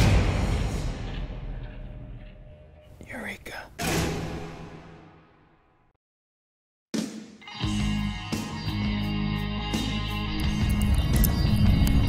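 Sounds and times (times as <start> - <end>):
loud musical hit: 0.0 - 2.2
whispered voice: 3.0 - 3.8.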